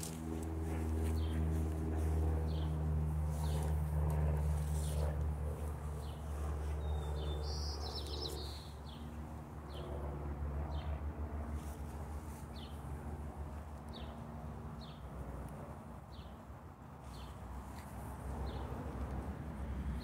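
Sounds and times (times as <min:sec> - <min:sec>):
steady low droning hum: 0:00.0 - 0:15.9
small birds chirping: 0:00.7 - 0:03.7, 0:05.6 - 0:09.1.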